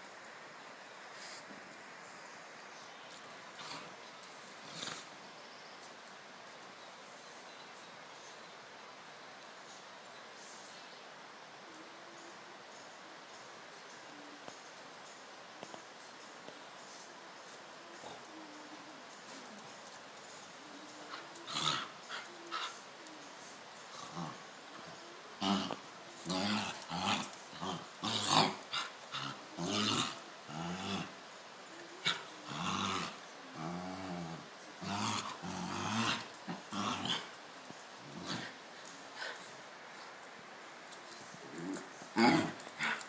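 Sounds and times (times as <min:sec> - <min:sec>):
dogs growling snarls: 0:04.6 - 0:05.2, 0:21.0 - 0:22.8, 0:23.9 - 0:31.2, 0:32.0 - 0:37.4, 0:38.0 - 0:38.6, 0:41.4 - 0:43.0.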